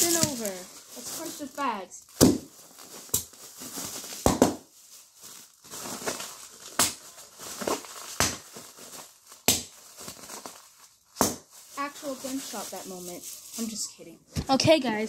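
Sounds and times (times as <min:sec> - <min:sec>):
packing bags popping: 0:00.0 - 0:12.6
plastic crinkling: 0:00.0 - 0:14.1.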